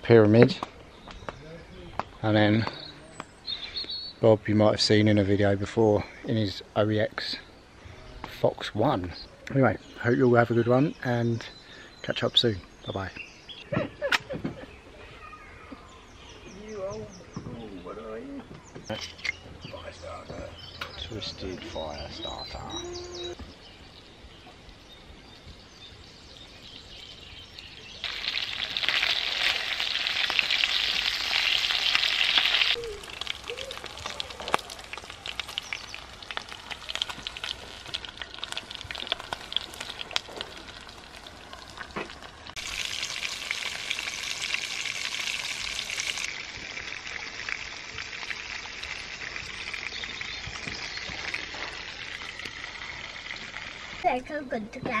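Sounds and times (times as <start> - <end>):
sausages sizzling in a pan: 28.0 - 54.0.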